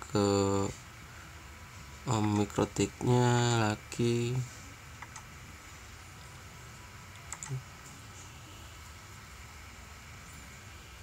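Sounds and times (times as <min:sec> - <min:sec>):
faint room noise: 0:00.0 - 0:11.0
computer mouse clicks: 0:02.2 - 0:02.6, 0:04.9 - 0:05.3, 0:07.1 - 0:07.6.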